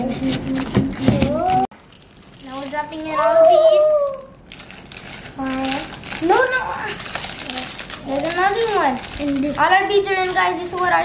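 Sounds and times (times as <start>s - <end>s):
plastic bag crinkling: 1.7s - 10.1s
child exclaiming: 2.5s - 4.4s, 5.4s - 11.0s.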